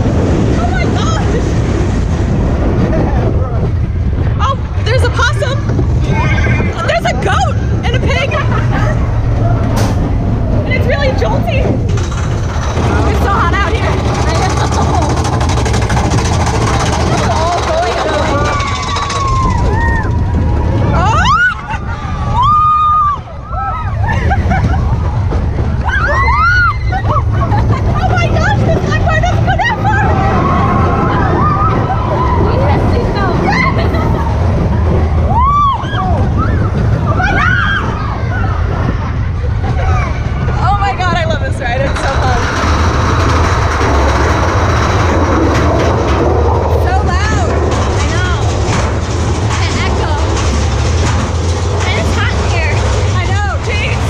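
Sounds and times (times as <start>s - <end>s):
roller coaster rumbling on track: 0.0s - 54.0s
riders screaming and whooping: 4.4s - 11.7s, 12.8s - 41.0s
riders screaming: 6.0s - 7.4s, 16.8s - 24.1s, 25.8s - 27.5s, 35.1s - 39.1s.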